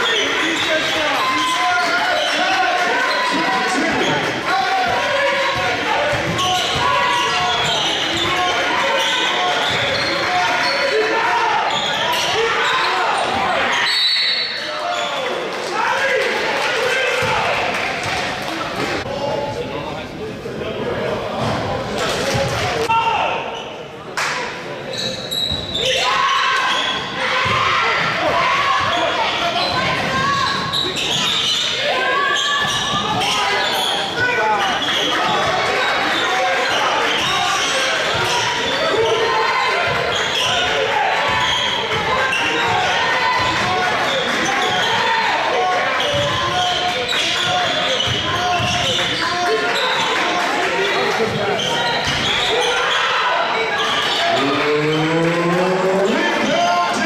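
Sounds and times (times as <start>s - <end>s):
many overlapping voices: 0.0s - 57.0s
basketball bouncing on court: 4.9s - 8.3s, 46.0s - 49.1s.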